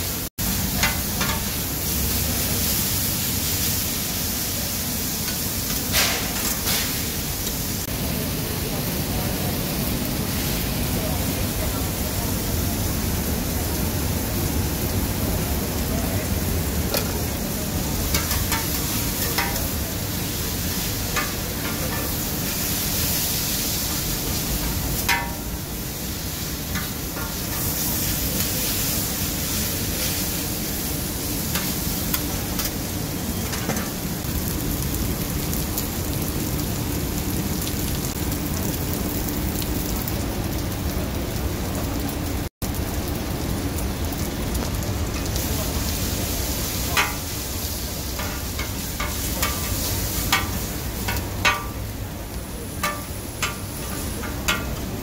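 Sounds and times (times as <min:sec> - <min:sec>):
food sizzling on a griddle: 0:00.0 - 0:55.0
metal spatulas scraping griddle: 0:18.1 - 0:19.6.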